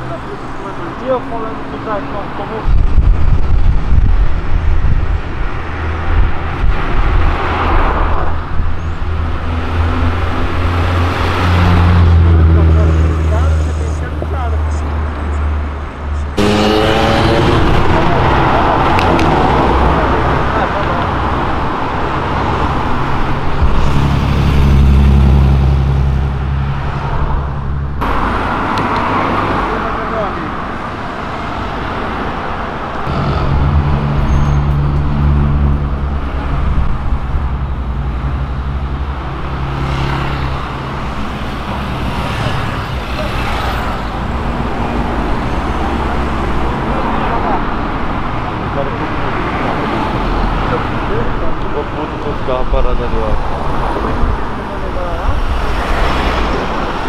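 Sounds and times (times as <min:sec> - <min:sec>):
car engines driving past: 0:00.0 - 0:57.0.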